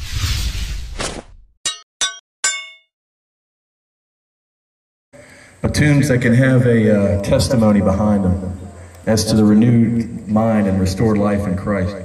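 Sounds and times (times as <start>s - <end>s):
crashing whoosh: 0.0s - 1.5s
sharp metallic clangs: 1.6s - 2.9s.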